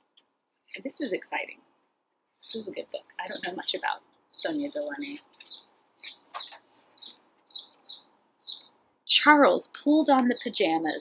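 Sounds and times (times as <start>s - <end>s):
small bird chirping: 2.3s - 11.0s.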